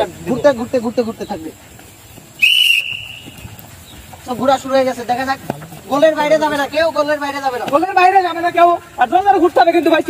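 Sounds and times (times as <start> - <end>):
whistle blown: 2.4 - 3.4.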